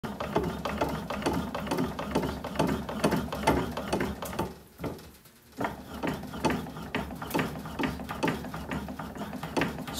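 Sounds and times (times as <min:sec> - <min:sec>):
machine mechanical strokes: 0:05.6 - 0:09.9.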